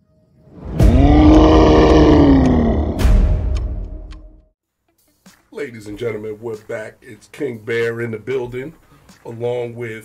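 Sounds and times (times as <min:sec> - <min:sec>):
large animal roar: 0:00.7 - 0:03.3.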